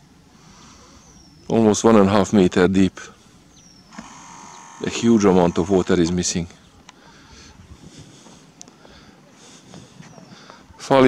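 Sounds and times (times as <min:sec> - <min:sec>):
camera zoom motor whining: 0:03.8 - 0:05.9.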